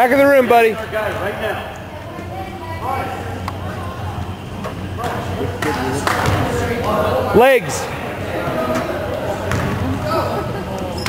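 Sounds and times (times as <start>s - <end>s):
steady low hum: 0.0s - 11.0s
voices echoing in hall: 0.0s - 11.0s.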